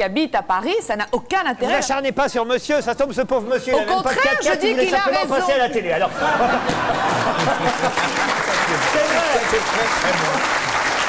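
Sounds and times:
audience applauding: 6.6 - 11.0.

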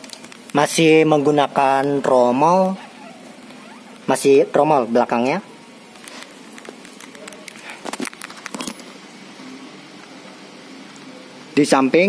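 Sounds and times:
steady low hum: 0.0 - 12.0
faint distant voices: 8.9 - 12.0.

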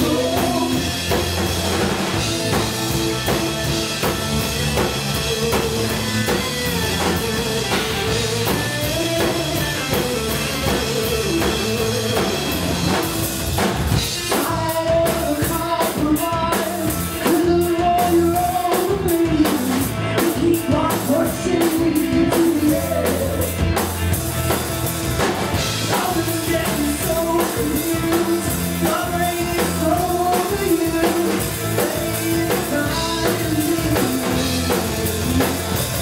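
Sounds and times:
live rock band playing: 0.0 - 36.0
steady drumming: 0.0 - 36.0.

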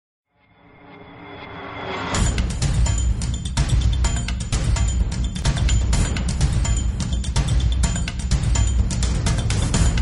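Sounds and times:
loud music: 2.1 - 10.0.

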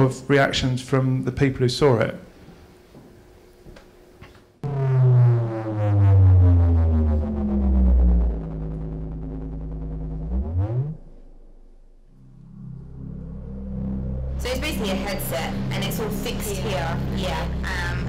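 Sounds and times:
deep synthesizer tone sliding in pitch: 4.6 - 18.0
low steady hum: 4.6 - 18.0.

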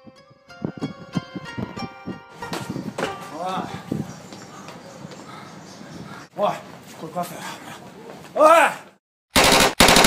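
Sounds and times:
machine gun fire: 9.4 - 10.0.

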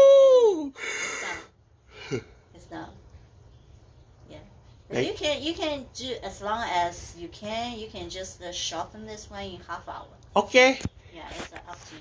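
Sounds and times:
person calling woo: 0.0 - 0.8.

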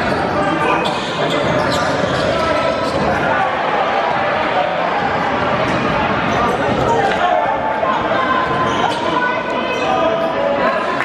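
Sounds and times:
crowd chatter and shouts: 0.0 - 11.0.

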